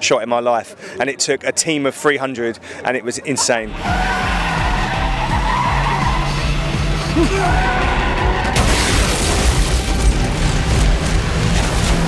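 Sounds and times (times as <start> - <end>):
tyres skidding: 3.6 - 12.0
film score music: 3.7 - 8.6
car engine running hard: 9.6 - 12.0.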